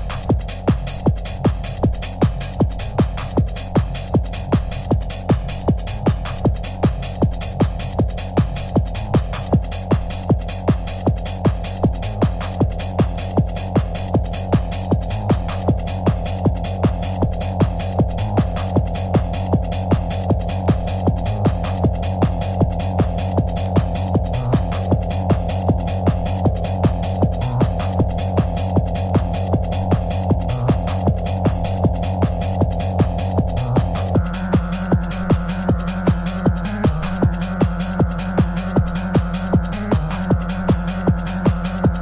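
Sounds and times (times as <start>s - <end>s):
hard trance kick drum: 0.0s - 42.0s
throbbing bass line: 0.0s - 42.0s.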